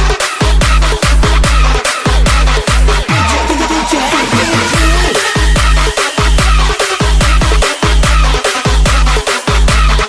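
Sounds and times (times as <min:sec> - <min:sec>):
synth sounds sliding down: 0:00.8 - 0:08.0.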